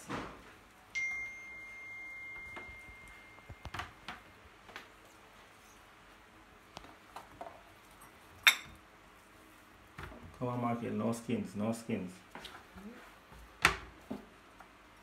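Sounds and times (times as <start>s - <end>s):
steady high-pitched tone: 1.0s - 4.0s.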